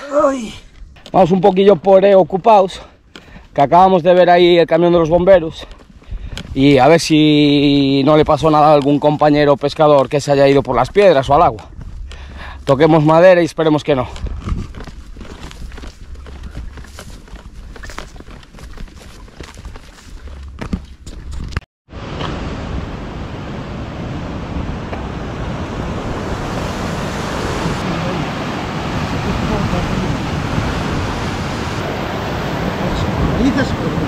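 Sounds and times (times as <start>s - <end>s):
wind: 0.0s - 34.0s
footsteps through dry ferns: 13.9s - 21.4s
sea surf: 21.9s - 34.0s.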